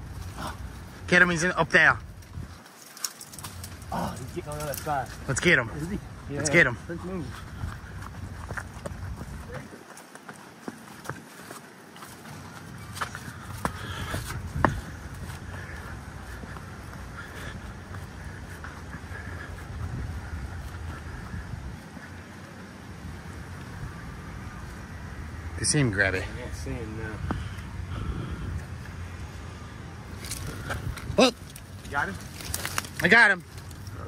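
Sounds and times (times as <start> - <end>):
faint voices: 3.4 - 10.6
footsteps on stone paving: 5.9 - 25.2.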